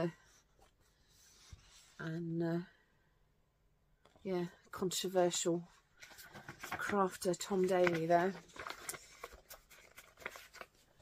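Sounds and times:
paper sheets rustling: 6.0s - 11.0s.

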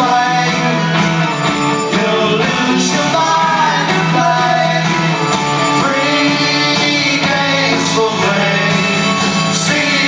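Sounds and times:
drums: 0.0s - 10.0s
electric guitars sustained notes: 0.0s - 10.0s.

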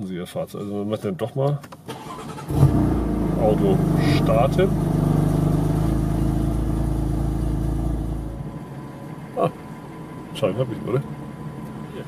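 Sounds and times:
car engine running: 2.2s - 12.0s.

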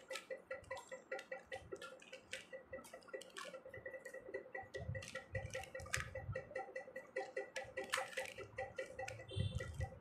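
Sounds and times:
puzzle cube clicking: 4.7s - 6.2s, 7.0s - 10.0s.

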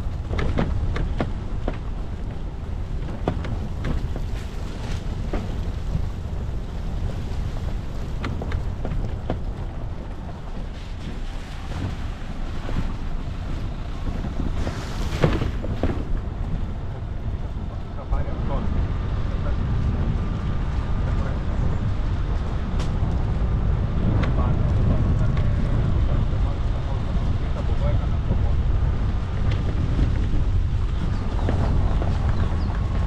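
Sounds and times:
vehicle engine rumble: 0.0s - 33.0s.

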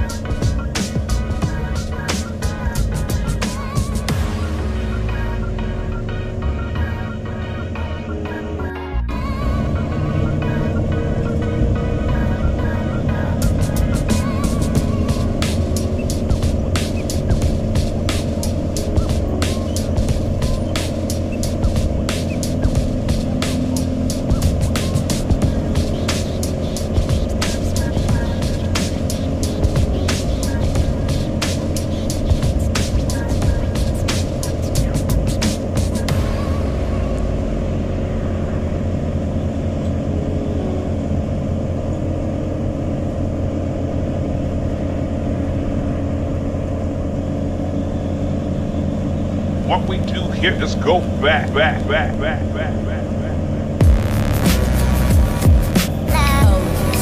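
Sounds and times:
vehicle engine and road drone: 0.0s - 57.0s.

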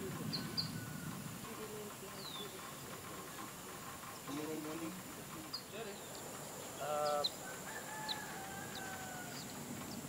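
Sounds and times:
small birds chirping: 0.0s - 10.0s
rooster crowing: 0.3s - 1.2s, 7.4s - 9.6s.

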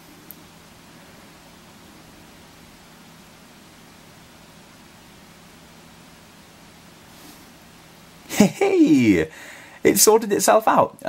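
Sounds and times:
faint hum: 0.0s - 11.0s
room tone hiss: 0.0s - 11.0s.

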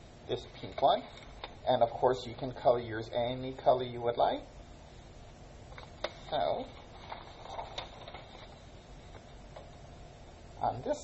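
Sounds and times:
paper rustling: 0.4s - 1.6s, 5.7s - 9.8s.

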